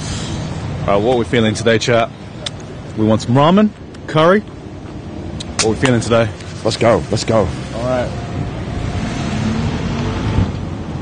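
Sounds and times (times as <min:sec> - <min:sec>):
rushing outdoor noise: 0:00.0 - 0:11.0.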